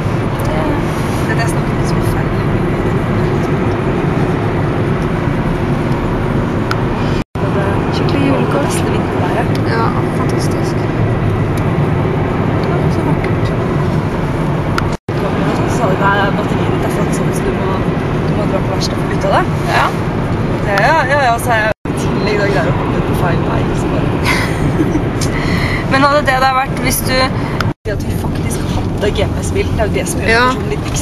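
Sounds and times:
road and engine noise in car: 0:00.0 - 0:31.0.

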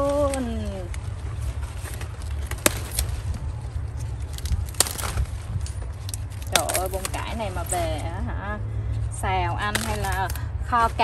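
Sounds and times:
cauliflower stalks snapping: 0:01.8 - 0:08.1, 0:09.7 - 0:10.4.

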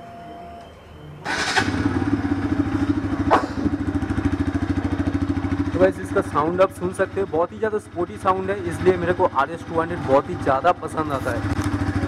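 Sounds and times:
motorcycle engine starting and idling: 0:01.2 - 0:12.0.

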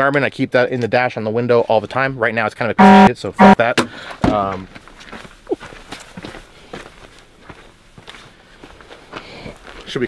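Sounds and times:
footsteps on grassy dirt: 0:04.5 - 0:10.0.

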